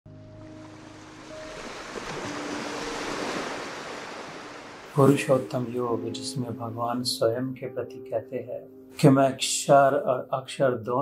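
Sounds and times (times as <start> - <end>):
soft sustained musical notes: 0.1 - 11.0
surf-like noise rush: 0.6 - 5.8.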